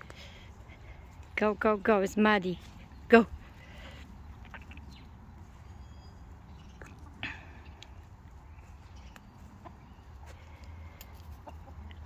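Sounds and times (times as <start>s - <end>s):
hens clucking softly: 9.6s - 12.0s.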